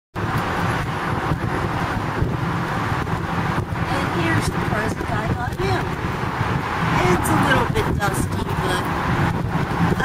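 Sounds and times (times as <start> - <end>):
low motor vehicle rumble: 0.2 - 10.0.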